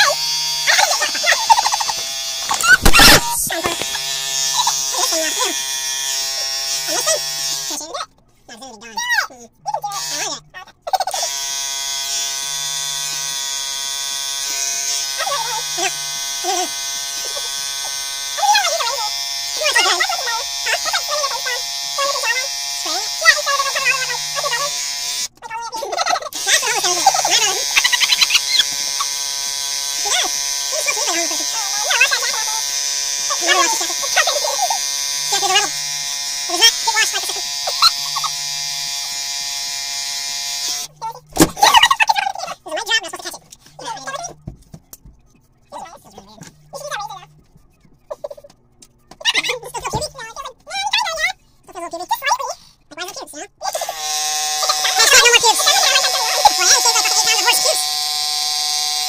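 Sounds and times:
electric shaver humming: 0:00.0 - 0:07.8, 0:09.8 - 0:10.4, 0:11.0 - 0:42.0, 0:53.6 - 0:59.0
sped-up voices chattering and laughing: 0:00.7 - 0:05.6, 0:25.4 - 0:29.2, 0:41.0 - 0:44.5, 0:45.4 - 0:57.8.

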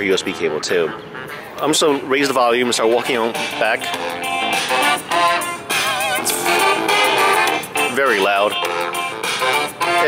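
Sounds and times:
loud guitar music from speaker: 0:03.9 - 0:08.0.

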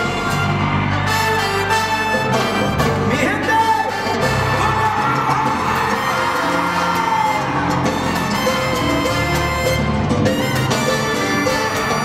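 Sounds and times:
crowd cheering and whooping: 0:00.0 - 0:02.7, 0:04.1 - 0:09.7, 0:10.6 - 0:12.0
live salsa band playing: 0:00.0 - 0:12.0.

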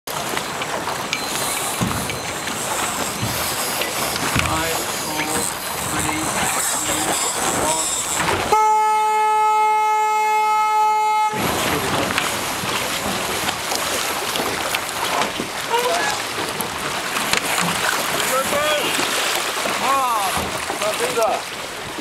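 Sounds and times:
wind: 0:00.0 - 0:22.0
water noise: 0:00.1 - 0:22.0
horn blast: 0:08.5 - 0:11.7.

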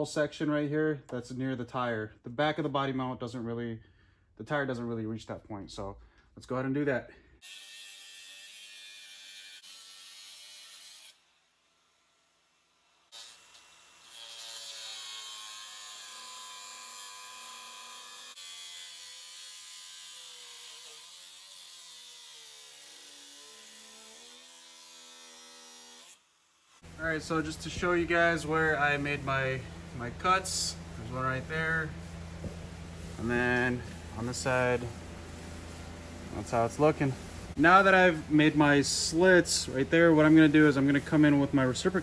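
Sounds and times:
angle grinder cutting steel: 0:07.4 - 0:27.0.

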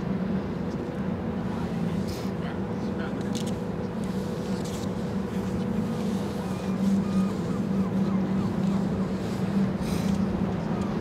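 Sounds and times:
ship machinery hum and rumble: 0:00.0 - 0:11.0.

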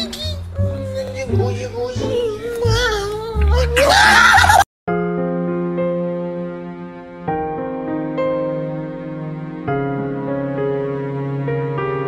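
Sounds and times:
slow keyboard music: 0:00.0 - 0:12.0.

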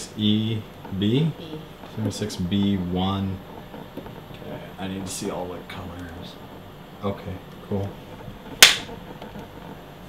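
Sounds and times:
clapperboard clack: 0:08.4 - 0:09.7.

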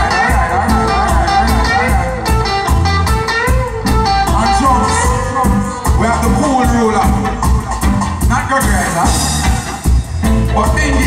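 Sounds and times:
electric guitar bent notes: 0:00.0 - 0:10.5
reggae band playing: 0:00.0 - 0:11.0.

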